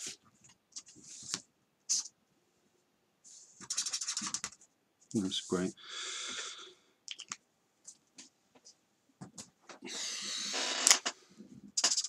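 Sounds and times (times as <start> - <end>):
pen scratching on paper: 3.6 - 4.6.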